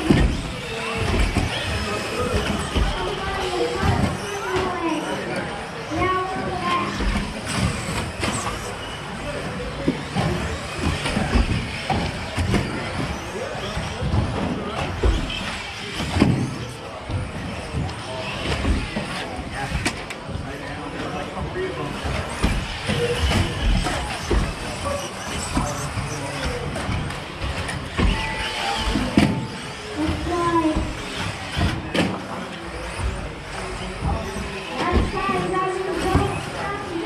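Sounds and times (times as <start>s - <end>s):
hall noise: 0.0s - 37.0s
rc car motors and tyres: 0.0s - 37.0s.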